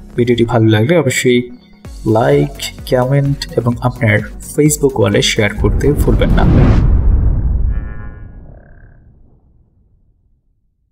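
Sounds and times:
low rumble: 5.6s - 10.5s.

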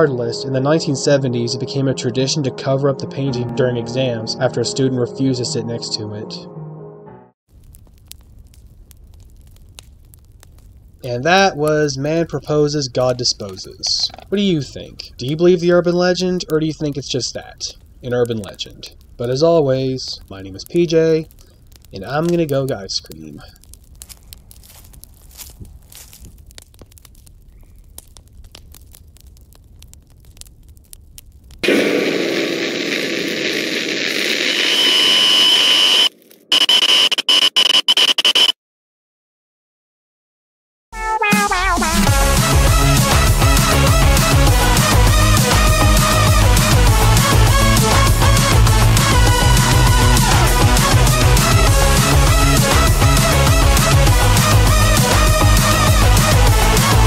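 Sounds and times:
scattered crackles: 7.5s - 38.6s, 41.2s - 57.0s
harsh tv static bursts: 31.6s - 38.5s, 43.6s - 57.0s
high steady whine: 31.6s - 38.5s.

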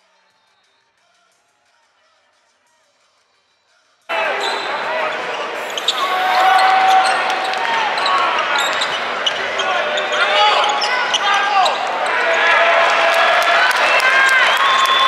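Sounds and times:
crowd chatter echoing: 0.0s - 15.0s.

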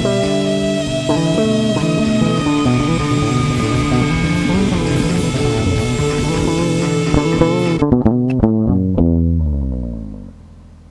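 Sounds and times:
rock band music: 0.0s - 8.3s
electric bass playing: 0.0s - 10.9s.

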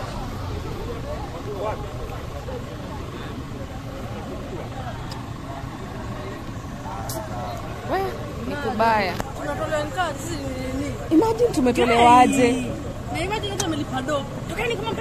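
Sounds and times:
people talking indistinctly: 0.0s - 15.0s
road traffic rumble: 0.0s - 15.0s.

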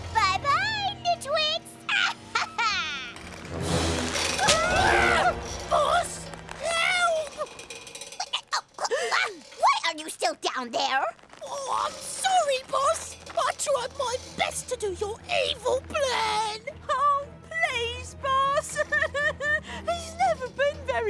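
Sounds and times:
background music: 0.0s - 21.0s
cartoon character laughing and straining: 1.9s - 3.2s, 6.6s - 9.6s.

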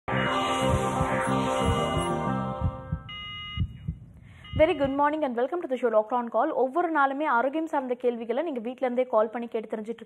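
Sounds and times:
synth theme music: 0.0s - 3.9s
short bright electronic tone: 0.1s - 5.0s
low thumps: 0.4s - 5.1s.

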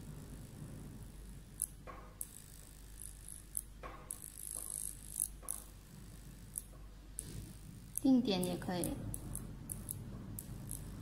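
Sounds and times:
low steady hum: 0.0s - 11.0s
sharp high-pitched click: 1.6s - 2.4s.

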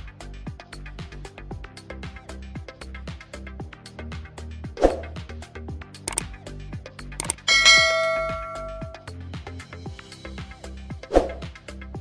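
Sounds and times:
background music with beat: 0.0s - 12.0s
bell chime ding: 7.2s - 9.1s.

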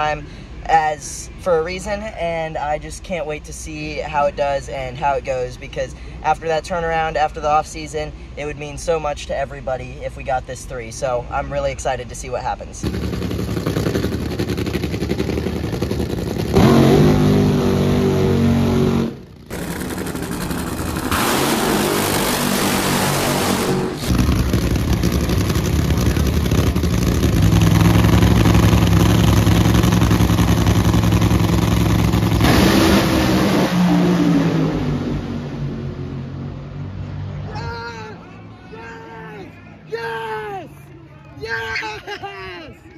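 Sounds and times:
dragster engines revving: 12.8s - 37.5s
dragsters racing away: 12.8s - 37.5s.

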